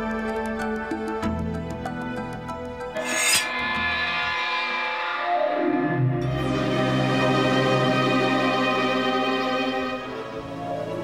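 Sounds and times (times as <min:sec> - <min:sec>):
background music: 0:00.0 - 0:11.0
sword sliding along scabbard: 0:03.0 - 0:03.7.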